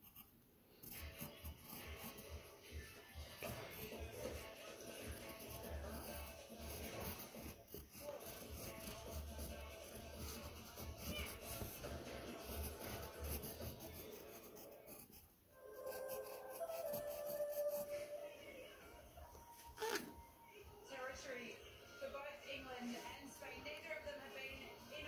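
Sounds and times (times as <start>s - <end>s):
pencil scratching on paper: 0.0s - 18.3s
television music: 0.7s - 25.0s
faint television speech: 0.8s - 25.0s.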